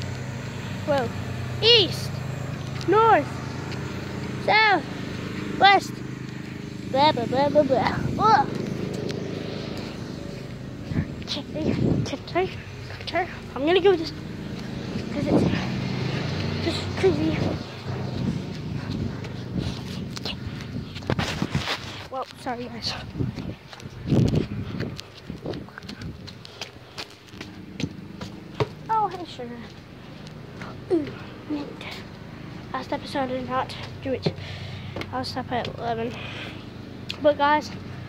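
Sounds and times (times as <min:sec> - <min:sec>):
low engine drone: 0:00.0 - 0:38.0
footsteps: 0:02.5 - 0:32.2.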